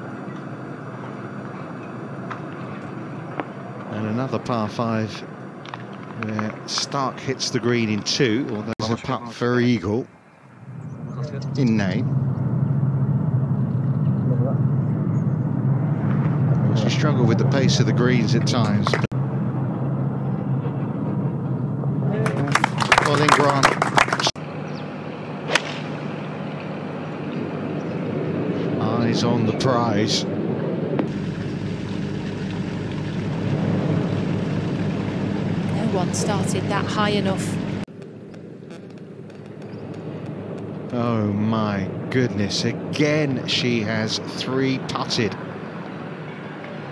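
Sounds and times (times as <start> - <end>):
quiet outdoor background noise: 0.0 - 46.9
steady low hum: 0.0 - 46.9
person speaking: 35.7 - 37.6.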